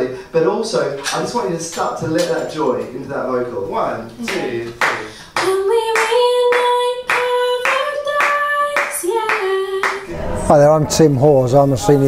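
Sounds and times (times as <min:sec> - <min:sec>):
steady hand claps: 0:04.3 - 0:10.1.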